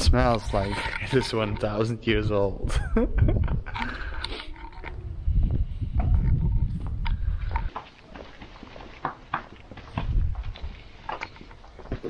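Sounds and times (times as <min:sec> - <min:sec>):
wind buffeting microphone: 0:00.0 - 0:08.3, 0:09.7 - 0:12.0
footsteps on stone walkway: 0:03.5 - 0:12.0.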